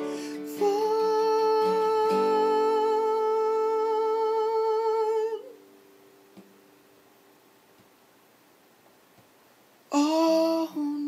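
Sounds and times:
man singing sustained note: 0.0s - 5.6s
faint steady tone: 0.0s - 11.0s.

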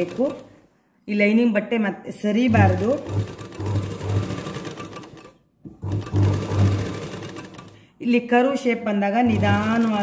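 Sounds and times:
sewing machine stitching: 0.0s - 0.6s, 2.5s - 7.8s, 9.2s - 10.0s.

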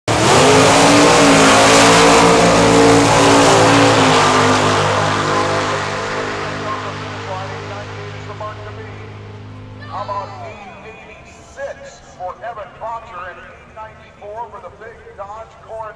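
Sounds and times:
drag racing cars launching: 0.1s - 15.9s.

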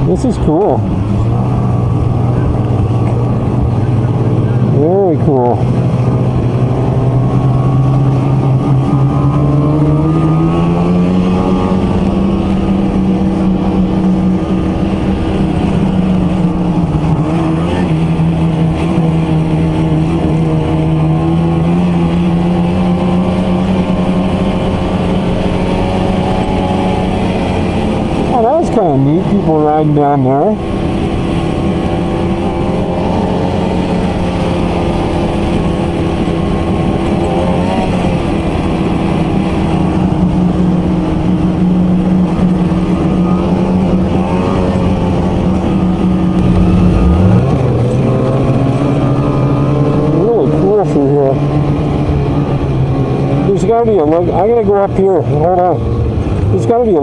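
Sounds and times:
snowmobile engine running: 0.0s - 57.0s.

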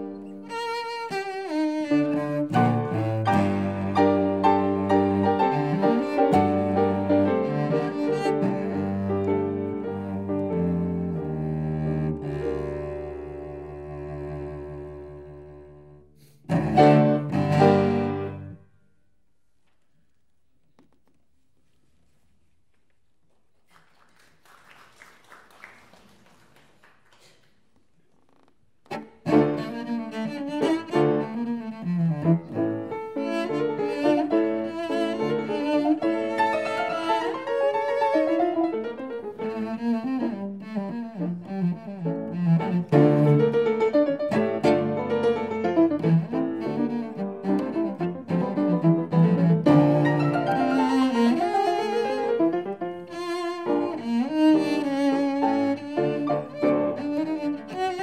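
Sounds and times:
cello and piano chamber music: 0.0s - 18.6s, 28.8s - 58.0s.

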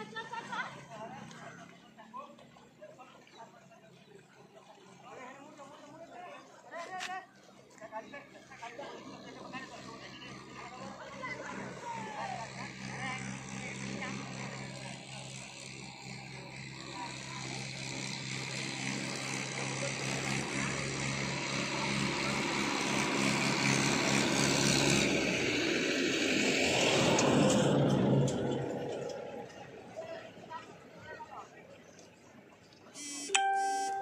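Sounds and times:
voices: 0.0s - 24.3s
vehicle engine drone: 7.9s - 30.3s.

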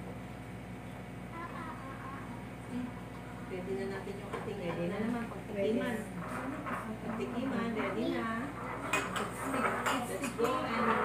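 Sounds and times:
utensils clinking against dishes: 6.3s - 11.0s.

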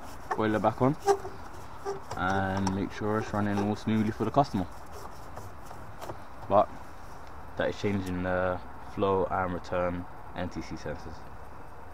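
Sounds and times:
low background noise: 0.0s - 11.9s.

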